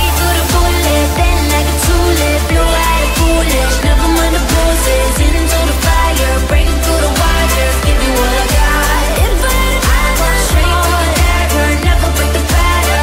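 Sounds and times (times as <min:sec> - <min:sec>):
deep kick drum: 0:00.0 - 0:13.0
synth chords: 0:00.0 - 0:13.0
woman singing: 0:00.0 - 0:13.0.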